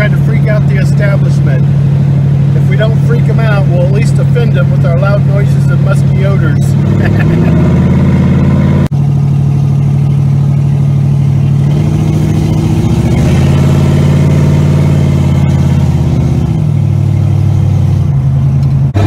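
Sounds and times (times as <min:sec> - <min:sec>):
loud car exhaust from inside cabin: 0:04.7 - 0:19.0.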